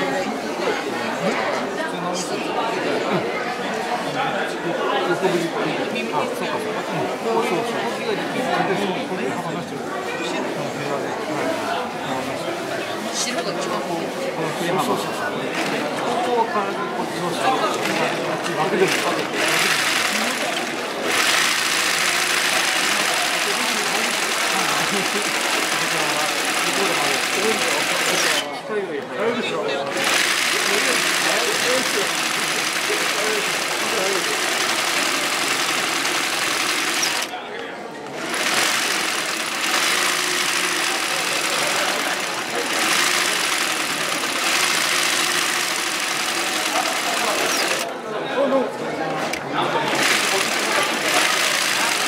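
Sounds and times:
sewing machine stitching: 0:17.7 - 0:28.5, 0:29.9 - 0:37.3, 0:38.1 - 0:47.9, 0:49.9 - 0:52.0.

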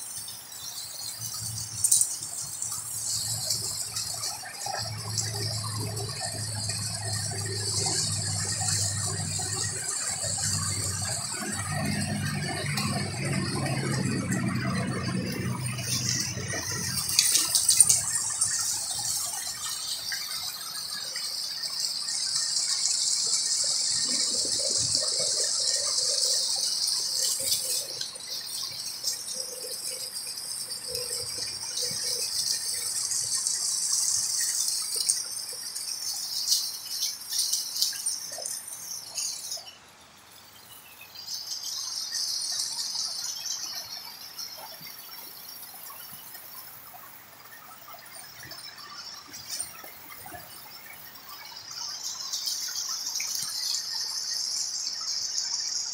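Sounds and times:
insects buzzing: 0:00.0 - 0:55.9
low hum: 0:02.4 - 0:18.8.

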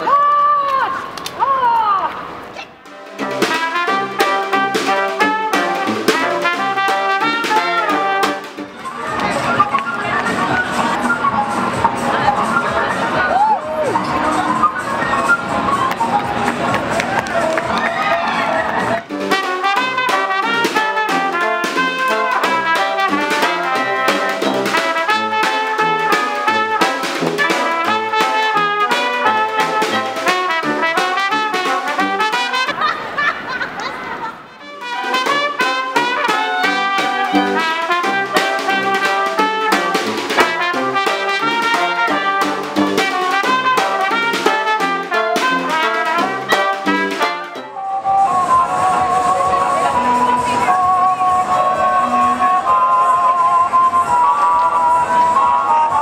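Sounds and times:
upbeat brass band music: 0:02.8 - 0:33.2, 0:34.4 - 0:56.0.

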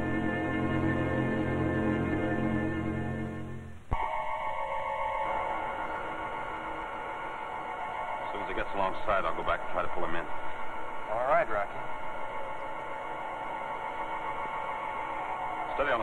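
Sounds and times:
electronic drone: 0:00.0 - 0:16.0
man speaking: 0:08.3 - 0:10.4, 0:11.1 - 0:11.8, 0:15.7 - 0:16.0.

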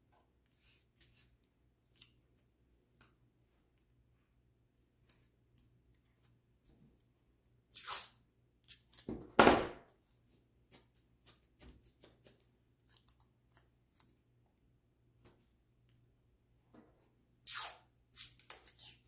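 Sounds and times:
masking tape tearing: 0:07.7 - 0:09.1, 0:17.4 - 0:19.0.

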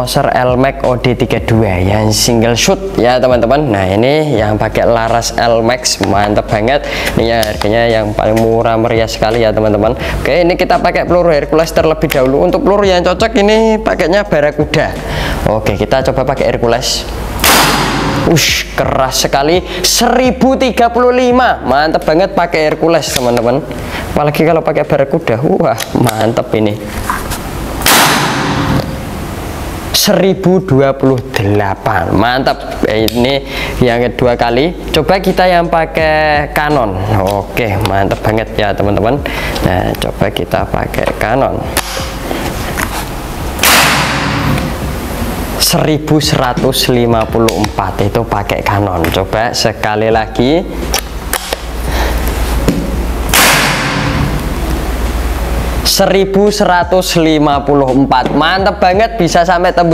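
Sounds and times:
air rifle shot: 0:17.4 - 0:18.4, 0:27.8 - 0:29.0, 0:43.6 - 0:44.8, 0:53.3 - 0:54.4.

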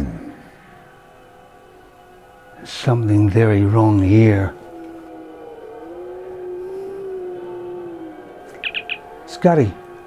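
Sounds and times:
synthesized drone: 0:03.2 - 0:10.0.

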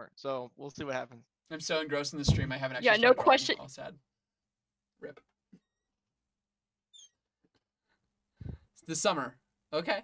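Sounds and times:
faint high-pitched chirp: 0:06.9 - 0:07.2.

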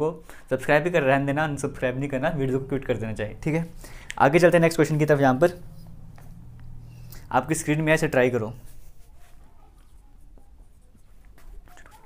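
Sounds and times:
marker squeaking on whiteboard: 0:05.5 - 0:07.3, 0:08.6 - 0:12.0.

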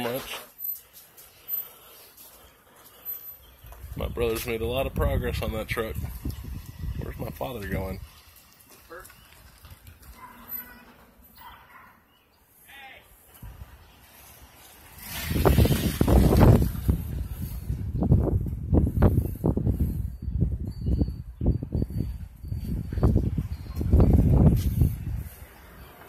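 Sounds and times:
wind buffeting microphone: 0:03.4 - 0:10.4, 0:13.3 - 0:26.0.

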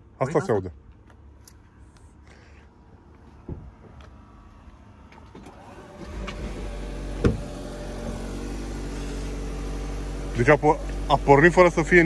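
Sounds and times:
car engine starting and idling: 0:03.9 - 0:12.0.

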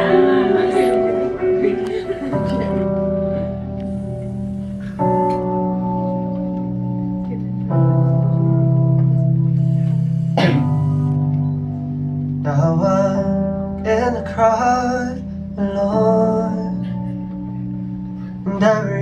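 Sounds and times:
electric keyboard chords: 0:00.0 - 0:19.0
wavering keyboard melody: 0:00.0 - 0:19.0.

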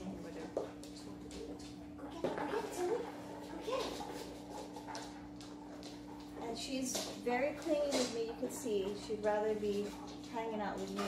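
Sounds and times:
dog claws clicking on wood floor: 0:03.4 - 0:11.0.

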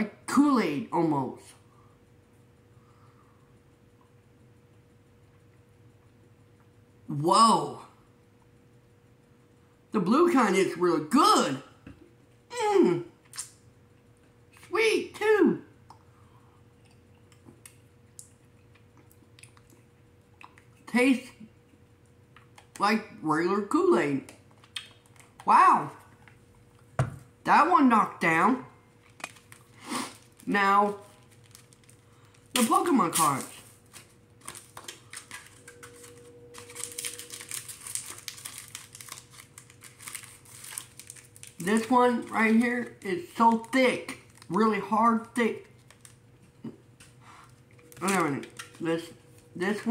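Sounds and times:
foil packs crinkling: 0:29.0 - 0:46.2, 0:47.4 - 0:49.4.

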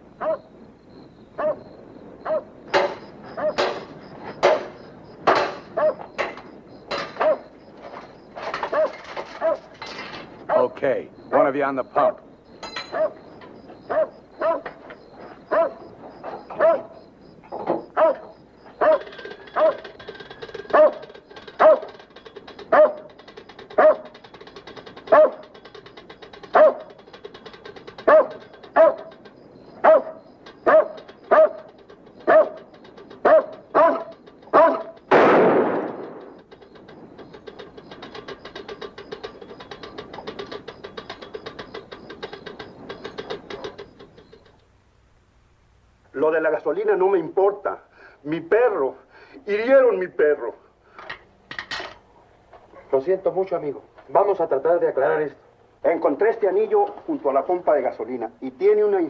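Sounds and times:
dog barking: 0:00.2 - 0:00.5, 0:01.4 - 0:02.5, 0:03.3 - 0:03.8, 0:05.7 - 0:06.1, 0:07.1 - 0:07.6, 0:08.6 - 0:09.8, 0:10.4 - 0:11.4, 0:12.9 - 0:13.2, 0:13.9 - 0:14.8, 0:15.5 - 0:15.9, 0:16.5 - 0:17.0, 0:17.9 - 0:19.9, 0:20.7 - 0:22.0, 0:22.7 - 0:23.1, 0:23.7 - 0:24.2, 0:25.1 - 0:25.5, 0:26.5 - 0:27.0, 0:28.0 - 0:29.2, 0:29.8 - 0:35.0, 0:52.7 - 0:53.0
loud gunshot blast: 0:35.1 - 0:36.4.

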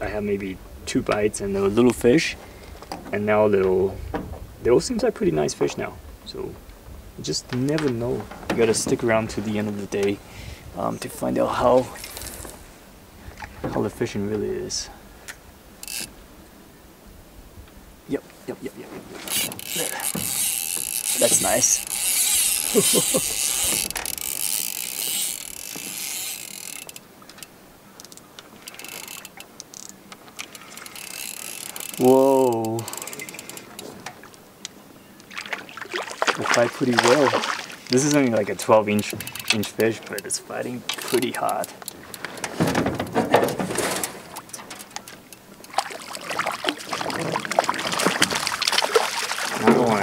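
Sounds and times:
fishing reel drag ratcheting: 0:15.8 - 0:16.1, 0:19.2 - 0:33.9, 0:38.9 - 0:40.3, 0:40.9 - 0:42.2
fish splashing at water surface: 0:35.3 - 0:38.0, 0:45.7 - 0:50.0.

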